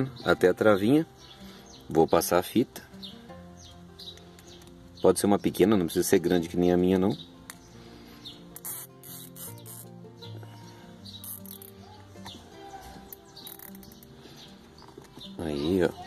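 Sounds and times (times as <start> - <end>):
soft background music: 0.0 - 16.0
zip tie rasping clicks: 8.6 - 10.0, 11.2 - 12.4, 13.0 - 14.2.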